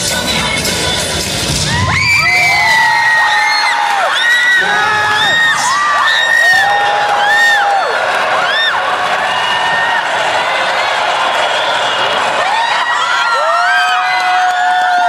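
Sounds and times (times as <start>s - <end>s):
high voices screaming and cheering: 0.0s - 15.0s.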